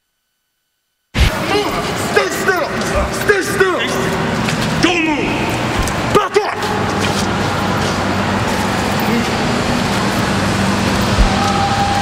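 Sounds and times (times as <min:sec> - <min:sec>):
background noise: 0:00.0 - 0:12.0
low mechanical hum: 0:01.2 - 0:12.0.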